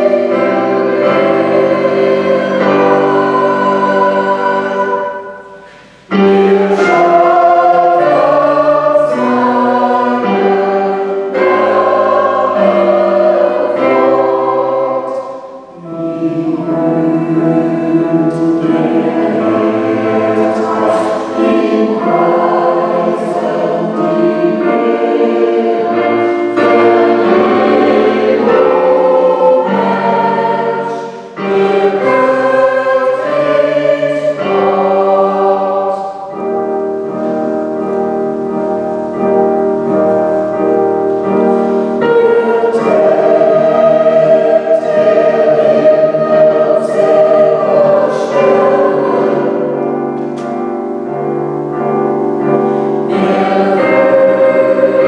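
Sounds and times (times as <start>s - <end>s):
mixed choir singing: 0.0s - 55.0s
piano accompaniment: 0.0s - 55.0s.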